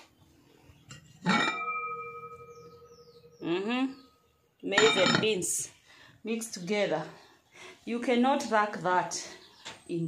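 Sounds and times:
metal pot lid clanking: 1.2s - 3.3s, 4.8s - 5.4s.

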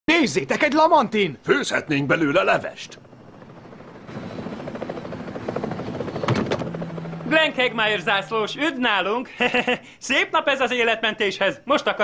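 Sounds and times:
helicopter rotor beating: 1.1s - 9.8s.

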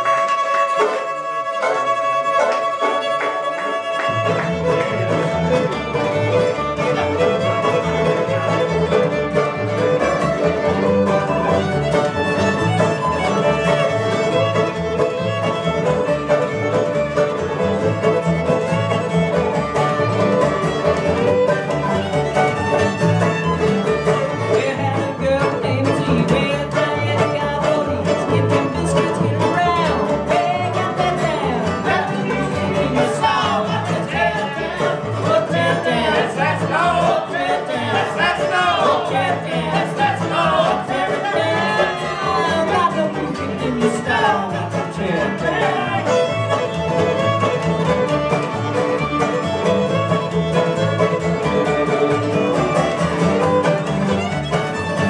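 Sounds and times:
acoustic string band playing: 0.0s - 55.0s
bowed fiddle: 0.0s - 55.0s.

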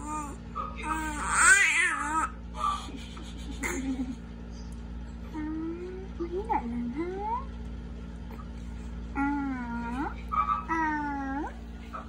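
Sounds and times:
baby cooing and squealing: 0.0s - 2.3s.

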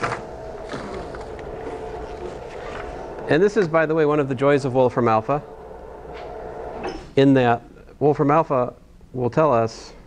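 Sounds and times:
electric motor humming: 0.0s - 7.2s.

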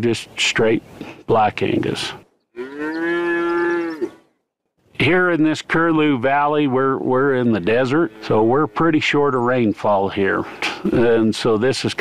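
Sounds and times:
cow mooing: 2.5s - 4.4s, 7.6s - 9.2s.

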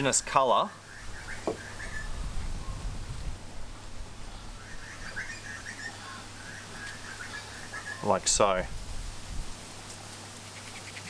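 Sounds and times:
birds chirping: 0.0s - 3.0s, 4.2s - 8.6s.

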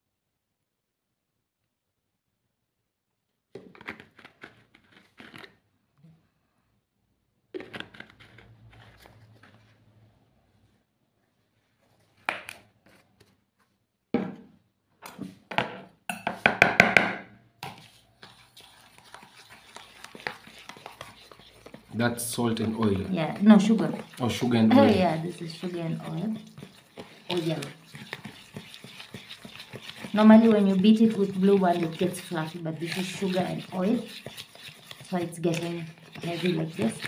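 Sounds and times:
fork stirring in plastic bowl: 3.6s - 5.6s, 7.5s - 9.6s, 17.6s - 37.0s
plastic bowls and utensils clattering: 3.6s - 5.6s, 7.5s - 9.6s, 19.6s - 37.0s.

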